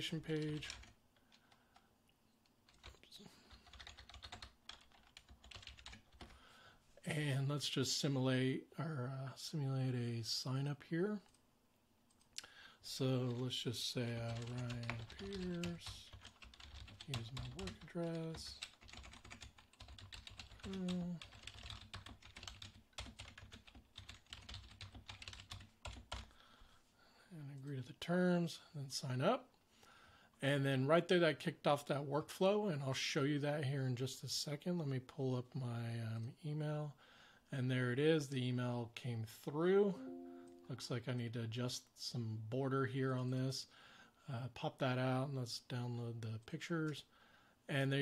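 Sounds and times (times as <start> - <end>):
typing on computer keyboard: 0.4 - 0.9, 2.7 - 6.4, 14.3 - 26.3.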